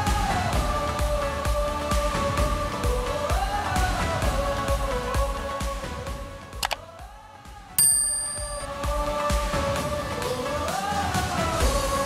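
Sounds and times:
bright bell-like chime: 0:07.8 - 0:08.8.

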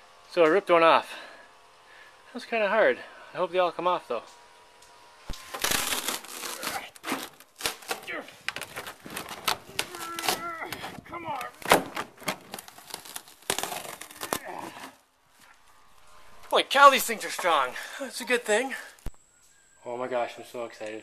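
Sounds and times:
plastic cracking and tearing: 0:05.3 - 0:15.0.

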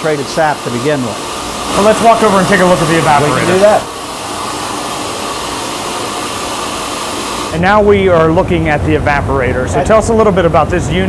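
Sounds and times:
whooshing machinery: 0:00.0 - 0:11.0.

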